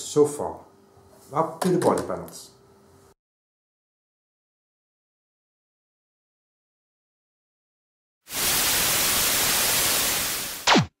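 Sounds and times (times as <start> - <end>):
static hiss: 8.3 - 11.0.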